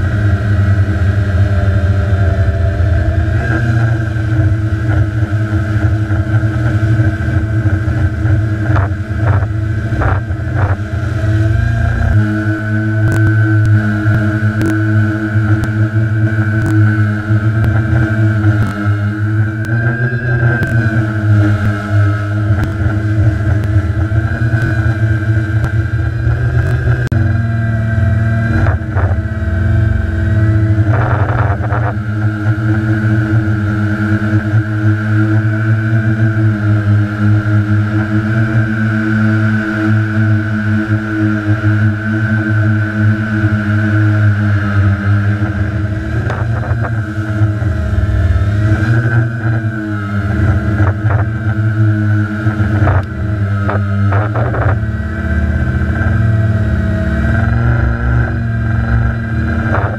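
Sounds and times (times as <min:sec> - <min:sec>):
drone motors whining: 0:00.0 - 0:59.9.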